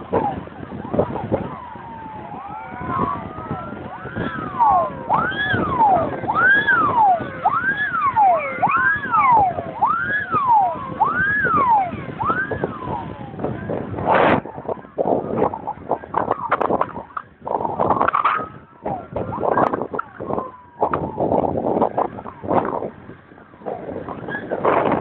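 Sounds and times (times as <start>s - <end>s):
fire engine sirens wailing: 0.0s - 25.0s
vehicle engine and road noise: 0.0s - 25.0s.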